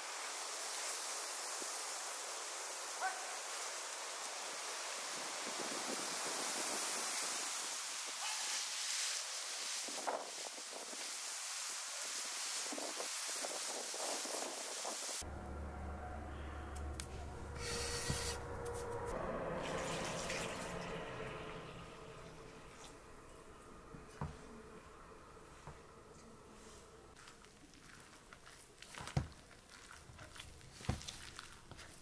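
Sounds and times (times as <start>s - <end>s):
wind hiss: 0.0s - 15.2s
rustling of cut plants: 26.6s - 32.0s.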